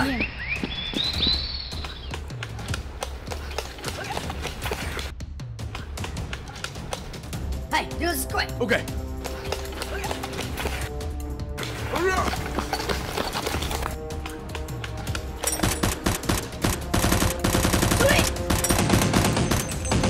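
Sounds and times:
background music: 0:00.0 - 0:20.0
rapid gunfire: 0:15.6 - 0:20.0.

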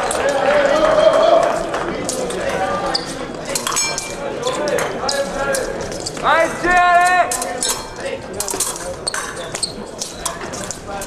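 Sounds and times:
fencing blades clinking: 0:00.0 - 0:11.0.

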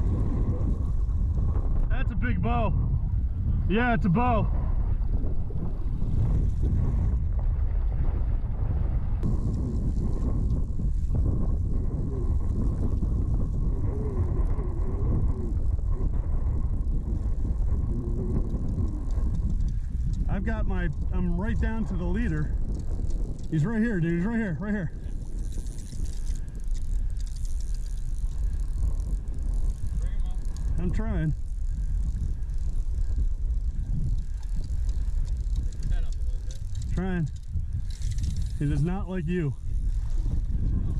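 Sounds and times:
wind on microphone: 0:00.0 - 0:40.9
faint ticks: 0:09.2 - 0:23.9, 0:25.0 - 0:40.9.

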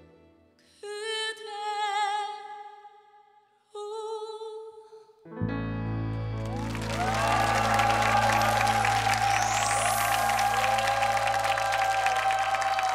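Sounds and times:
audience applause: 0:06.3 - 0:12.9.

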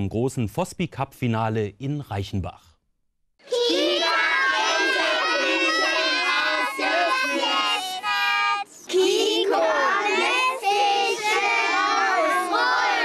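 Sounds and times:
children shouting a cheer: 0:03.4 - 0:13.0.

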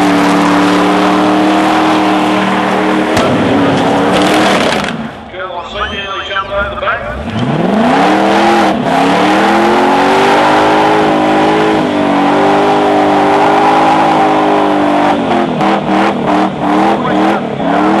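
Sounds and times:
car engine revving: 0:00.0 - 0:05.4, 0:06.4 - 0:18.0
tyres squealing on asphalt: 0:00.0 - 0:18.0.

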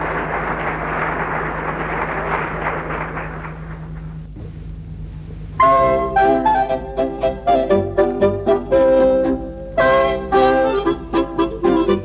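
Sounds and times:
low even hum: 0:00.0 - 0:12.0.

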